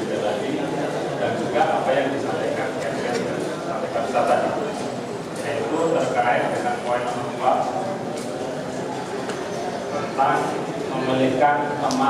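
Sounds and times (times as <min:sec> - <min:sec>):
man speaking into a microphone: 0:00.0 - 0:04.8, 0:05.4 - 0:08.0, 0:10.0 - 0:12.0.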